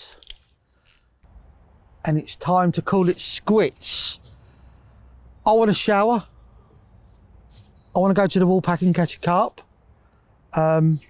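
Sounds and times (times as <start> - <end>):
soft rustle: 6.2 - 8.0.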